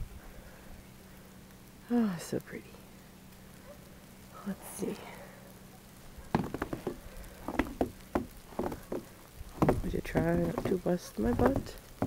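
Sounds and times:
footsteps crunching on snow: 6.3 - 11.8.

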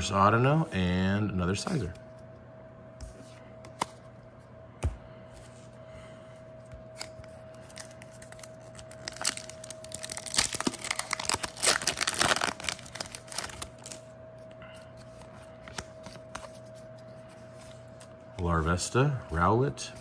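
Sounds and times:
foil wrapper tearing and crinkling: 7.7 - 14.0.

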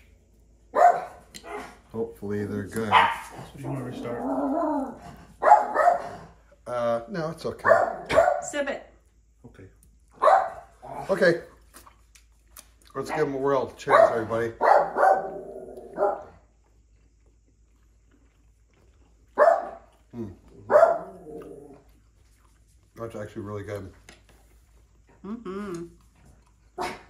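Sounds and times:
dog barking: 0.7 - 1.8, 2.9 - 4.2, 4.9 - 6.2, 7.6 - 8.5, 10.2 - 10.8, 13.0 - 16.4, 19.3 - 20.0, 20.6 - 21.5, 26.8 - 27.0.

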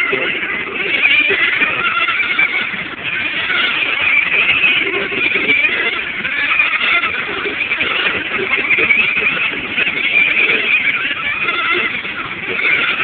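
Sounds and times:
radio-controlled car motors whining: 0.0 - 13.0.

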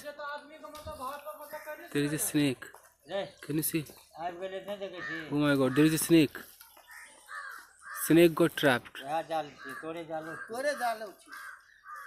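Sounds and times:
voices talking: 0.0 - 12.0
bird calls: 0.8 - 12.0.

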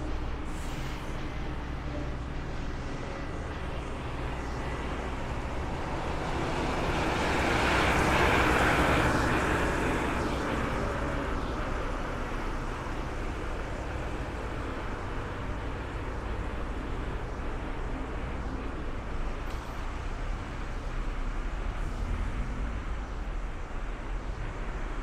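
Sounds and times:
low rumble of traffic: 0.0 - 25.0.

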